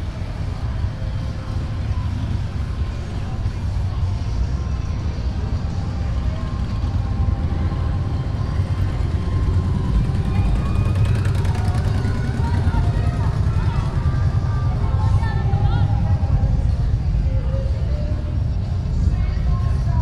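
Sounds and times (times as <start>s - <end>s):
indistinct voices: 0.0s - 20.0s
vehicle engines rumbling: 0.0s - 20.0s.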